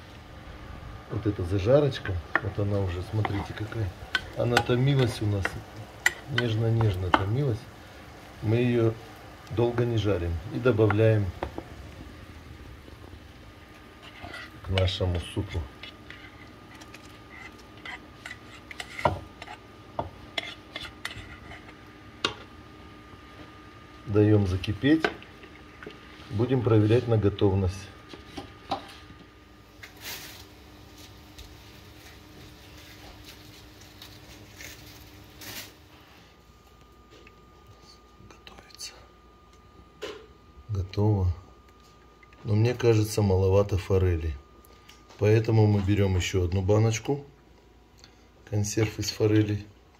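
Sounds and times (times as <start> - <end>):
spoon scraping frying pan: 3.1 - 7.3, 14.0 - 15.0, 15.7 - 19.7, 20.3 - 22.4
stirring soup in pot: 13.8 - 15.0, 15.7 - 22.4.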